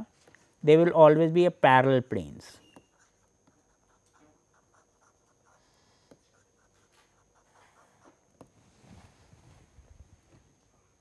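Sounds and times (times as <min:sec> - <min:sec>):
stylus scratching on tablet: 0:02.8 - 0:08.5.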